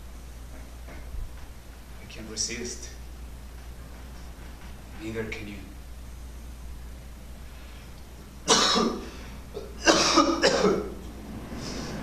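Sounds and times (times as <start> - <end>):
man coughing: 8.5 - 11.0.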